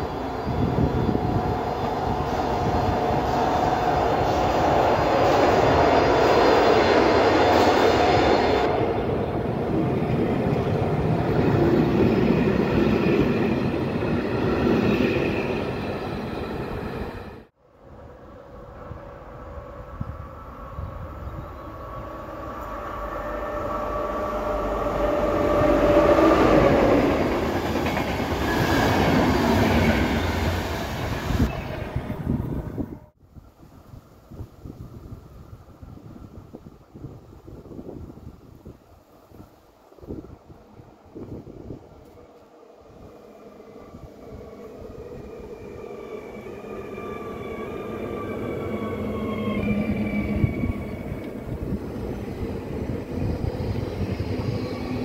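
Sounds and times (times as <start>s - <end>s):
electric locomotive passing: 0.0s - 55.0s
train wheels on rails: 22.4s - 32.4s.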